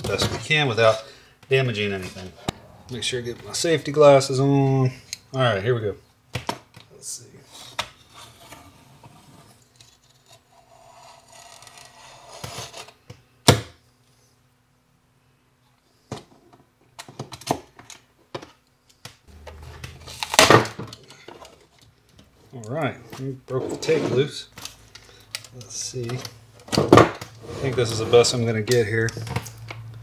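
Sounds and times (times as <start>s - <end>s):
adhesive tape ripping loose: 20.0s - 20.7s.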